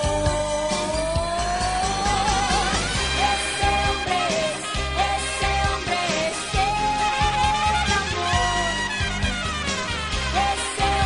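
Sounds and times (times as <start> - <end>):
pop ballad band: 0.0 - 11.0
steady drum beat: 0.0 - 11.0.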